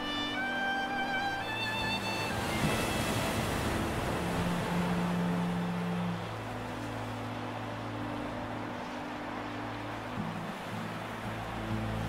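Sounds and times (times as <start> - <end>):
orchestral strings: 0.0 - 12.0
sea surf washing in: 0.0 - 12.0
violin melody: 0.0 - 12.0.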